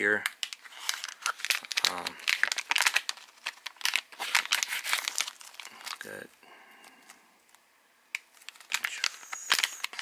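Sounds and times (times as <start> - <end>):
plastic packaging crinkling: 0.2 - 6.2, 8.1 - 10.0.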